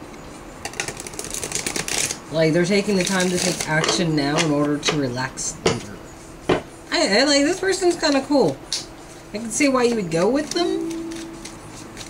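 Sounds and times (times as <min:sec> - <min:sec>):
cards being shuffled: 0:09.8 - 0:12.0.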